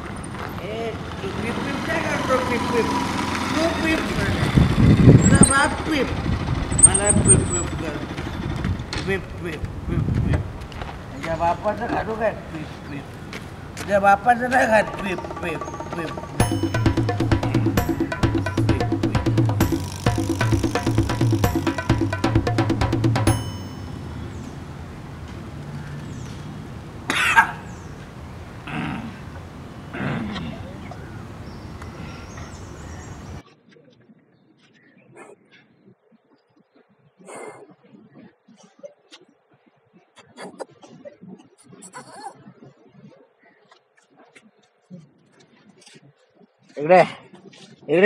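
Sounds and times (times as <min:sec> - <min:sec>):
motorcycle engine pulling away: 0:00.0 - 0:09.0, 0:15.1 - 0:23.8
men's voices: 0:00.5 - 0:22.4
weak throaty sound: 0:15.0 - 0:22.4, 0:28.6 - 0:31.1
person coughing: 0:27.1 - 0:27.6.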